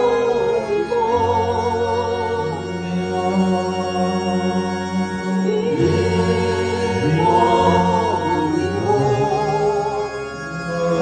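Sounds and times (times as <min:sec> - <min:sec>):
electronic organ chords: 0:00.0 - 0:11.0
voices singing a hymn: 0:00.0 - 0:11.0.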